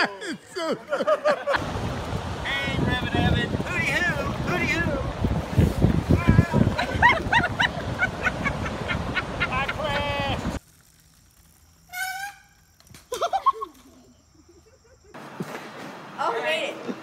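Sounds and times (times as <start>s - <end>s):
people laughing: 0.0s - 1.6s, 6.4s - 10.4s, 13.1s - 15.2s
wind noise on microphone: 1.6s - 10.6s.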